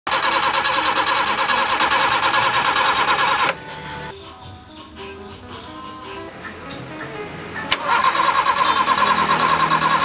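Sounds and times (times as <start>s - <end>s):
car engine running loudly: 7.7s - 10.0s.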